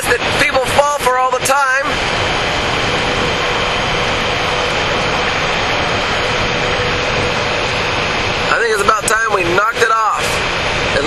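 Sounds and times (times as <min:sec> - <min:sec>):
faint steady hum: 0:00.0 - 0:11.0
loud rushing noise: 0:00.0 - 0:11.0.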